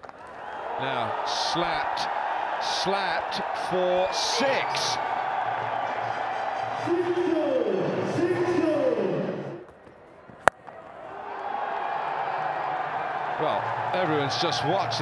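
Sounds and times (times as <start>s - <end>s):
stadium crowd cheering: 0.0s - 15.0s.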